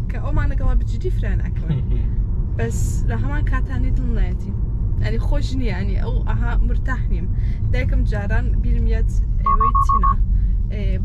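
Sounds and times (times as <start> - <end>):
woman talking: 0.0 - 1.8, 2.6 - 11.0
car cabin road rumble: 0.0 - 11.0.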